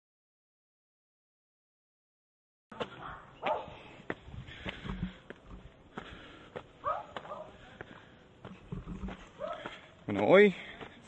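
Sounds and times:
footsteps on dirt trail: 2.7s - 11.0s.

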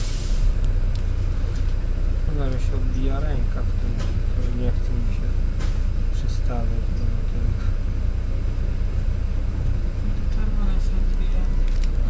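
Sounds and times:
air hiss: 0.0s - 0.6s
bus engine rumble: 0.0s - 12.0s.

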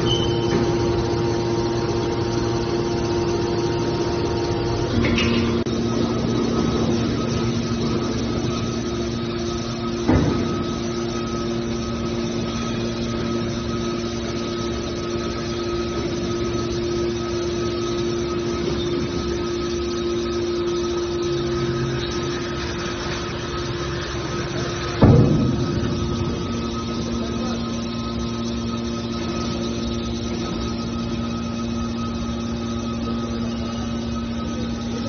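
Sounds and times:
hydraulic power unit humming: 0.0s - 35.0s.

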